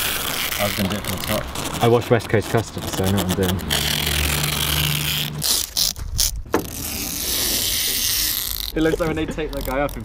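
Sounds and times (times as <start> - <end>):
masking tape ripping off roll: 0.0 - 10.0.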